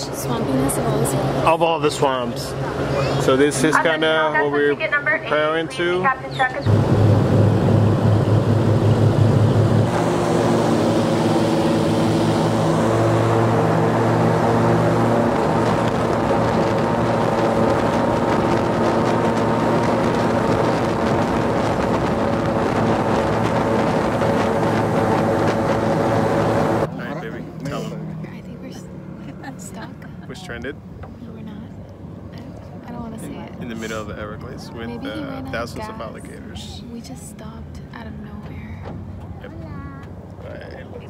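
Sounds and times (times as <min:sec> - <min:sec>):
airboat engine and propeller drone: 0:00.0 - 0:41.0.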